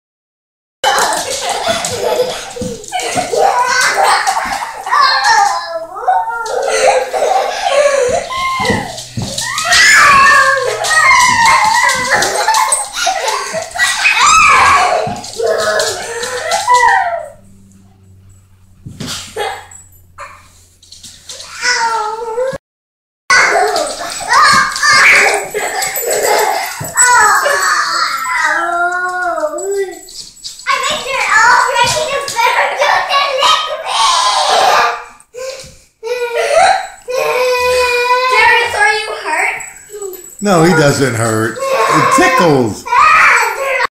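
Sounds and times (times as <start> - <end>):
boy squealing and laughing: 0.9 - 17.4, 23.4 - 30.0, 33.9 - 35.1, 40.4 - 43.9
small dog howling whine: 8.3 - 12.2, 15.6 - 18.1
person speaking: 40.4 - 42.8.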